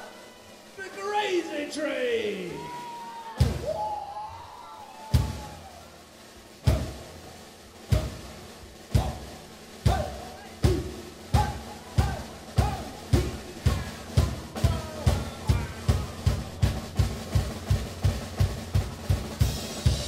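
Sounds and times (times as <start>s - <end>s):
drum kit accented hits: 6.5s - 20.0s.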